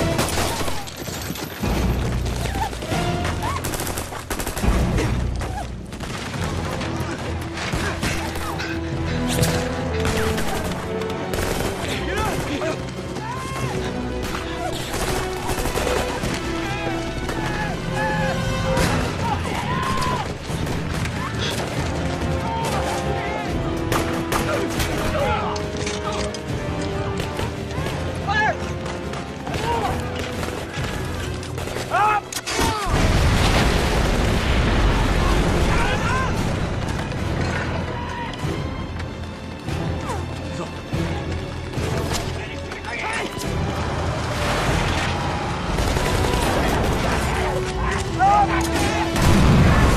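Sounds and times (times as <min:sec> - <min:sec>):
film score music: 0:00.0 - 0:49.9
rifle and machine-gun fire: 0:03.4 - 0:05.2, 0:10.0 - 0:12.8, 0:14.2 - 0:16.6, 0:44.3 - 0:47.7, 0:48.8 - 0:49.9
men shouting: 0:12.0 - 0:20.4, 0:46.3 - 0:49.2
large explosion rumbling: 0:32.9 - 0:37.2, 0:49.2 - 0:49.9.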